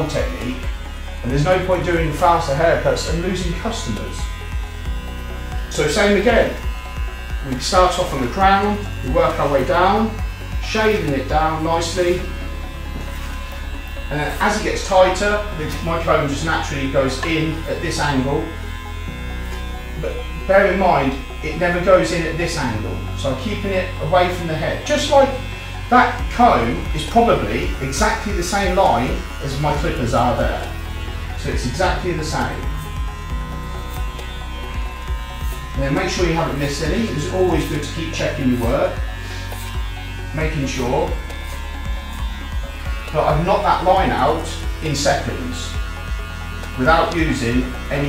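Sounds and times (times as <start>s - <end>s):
background music with beat: 0.0s - 16.2s, 25.5s - 37.9s
electric hair clippers buzzing: 0.0s - 48.0s.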